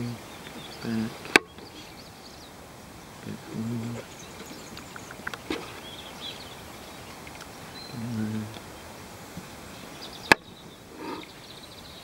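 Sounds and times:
faint bird chirps: 0:00.0 - 0:08.9, 0:09.7 - 0:12.0
man humming: 0:03.2 - 0:04.1, 0:07.9 - 0:08.6.

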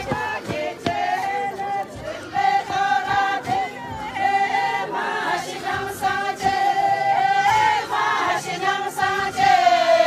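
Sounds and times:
women singing in unison: 0:00.0 - 0:10.0.

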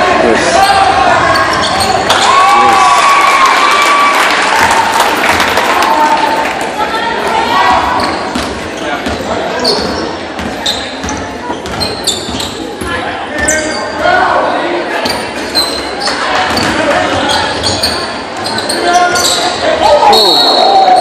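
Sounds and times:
spectators talking and calling out: 0:00.0 - 0:21.0
sneaker squeaks: 0:00.6 - 0:02.4, 0:07.7 - 0:14.1, 0:15.0 - 0:21.0.

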